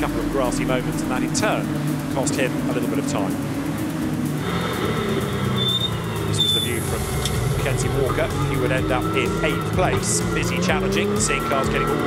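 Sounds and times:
race car engines running hard: 0:00.0 - 0:12.0
brief high-pitched squeals: 0:05.6 - 0:06.7.

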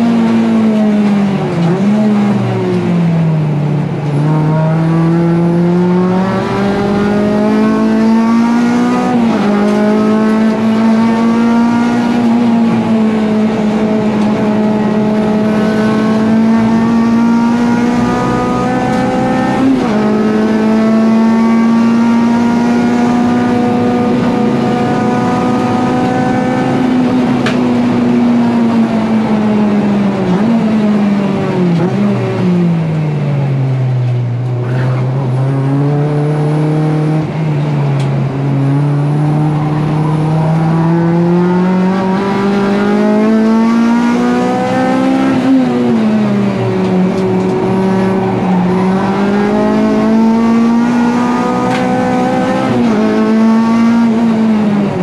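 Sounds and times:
race car engine revving: 0:00.0 - 0:55.0.

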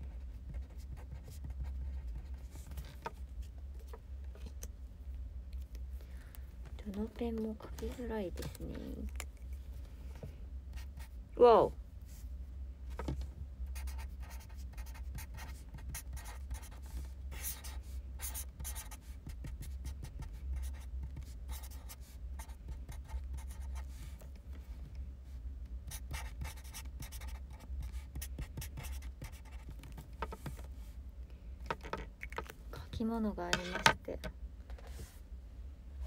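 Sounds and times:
low steady hum: 0:00.0 - 0:36.0
pen scratching on paper: 0:00.5 - 0:02.6, 0:13.8 - 0:23.9, 0:25.9 - 0:30.6.

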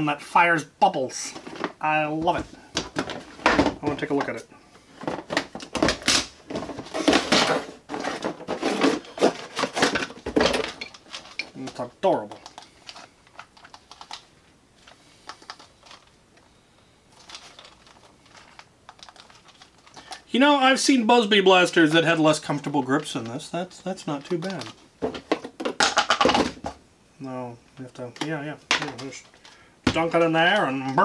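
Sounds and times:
cardboard and plastic packaging tearing: 0:05.3 - 0:11.4.

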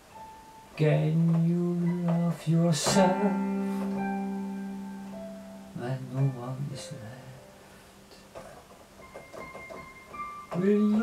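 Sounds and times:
digital piano played softly: 0:00.0 - 0:11.0
person singing: 0:00.8 - 0:08.6, 0:10.5 - 0:11.0.

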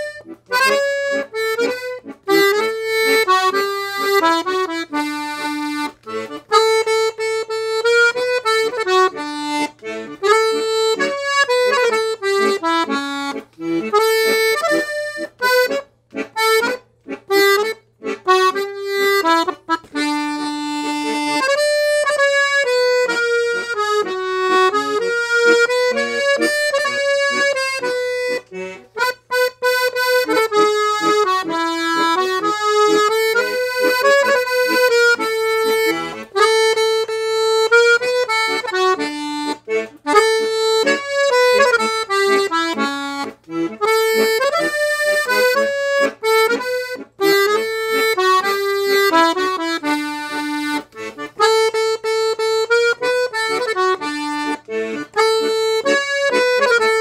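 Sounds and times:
accordion playing a tune: 0:00.0 - 0:57.0.

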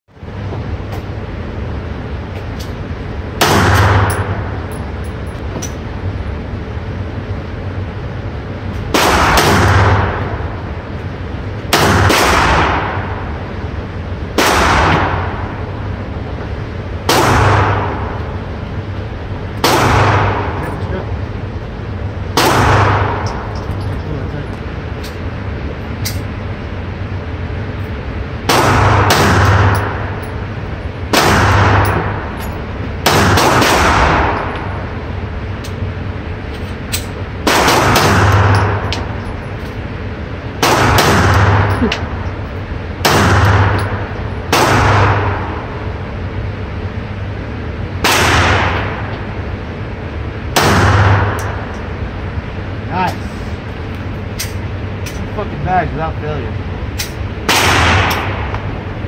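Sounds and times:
pistol shots indoors: 0:03.4 - 0:05.2, 0:08.8 - 0:10.6, 0:11.6 - 0:13.5, 0:14.3 - 0:16.0, 0:17.0 - 0:18.6, 0:19.6 - 0:20.9, 0:22.3 - 0:23.6, 0:28.4 - 0:35.6, 0:36.8 - 0:39.3, 0:40.5 - 0:42.4, 0:43.0 - 0:46.3, 0:47.1 - 0:49.6, 0:50.5 - 0:51.8, 0:57.0 - 0:58.9.

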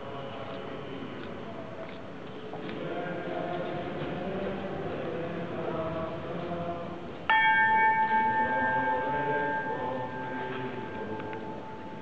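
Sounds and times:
bell clang ringing: 0:07.3 - 0:12.0.

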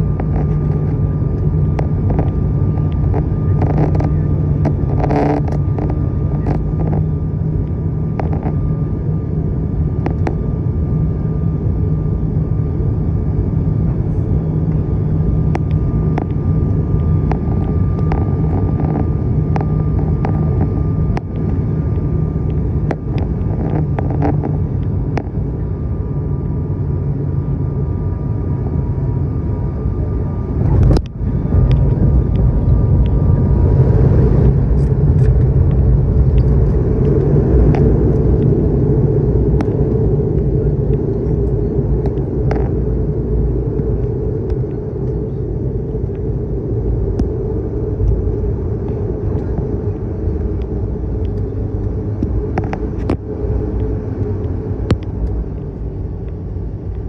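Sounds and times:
turboprop engine rumble in cabin: 0:00.0 - 0:57.0.

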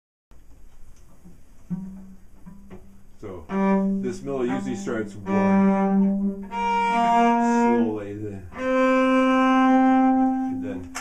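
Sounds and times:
bowed cello notes: 0:01.3 - 0:11.0.

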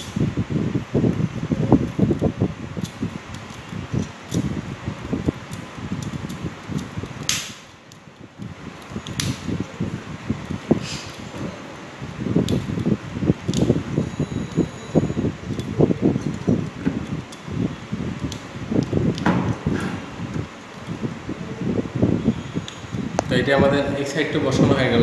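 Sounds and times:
wire rubbing and rustling: 0:00.0 - 0:25.0.

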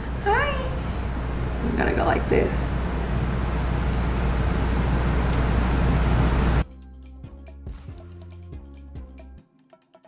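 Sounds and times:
low hum: 0:00.0 - 0:06.6
steady rushing noise: 0:00.0 - 0:06.6
background music: 0:06.6 - 0:10.0.

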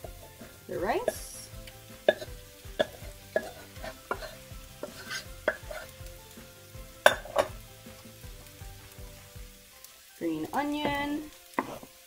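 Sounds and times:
low sizzle from hot pan: 0:00.0 - 0:12.0
wooden spoon scraping saucepan: 0:02.1 - 0:05.9, 0:10.8 - 0:11.9.

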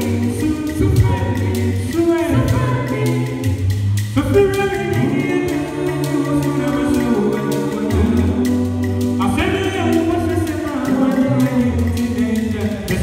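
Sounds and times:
a cappella group singing: 0:00.0 - 0:13.0
ticking beat: 0:00.0 - 0:13.0.

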